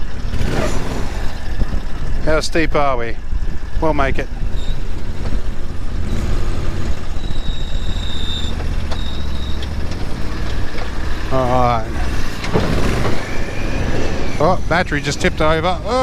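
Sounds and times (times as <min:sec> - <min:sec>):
vehicle engine droning: 0:00.0 - 0:16.0.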